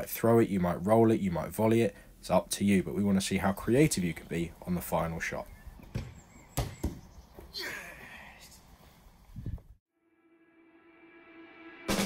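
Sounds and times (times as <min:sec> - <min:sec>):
ball thudding across lawn: 0:05.8 - 0:07.5
football kicked with a thud: 0:05.9 - 0:07.1
person shouting: 0:07.6 - 0:08.2.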